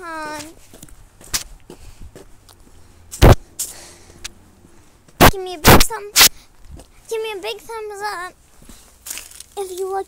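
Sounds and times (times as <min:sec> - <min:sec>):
slipper footsteps on concrete: 0:00.1 - 0:07.6, 0:08.5 - 0:09.9
loud thump: 0:03.2 - 0:03.4.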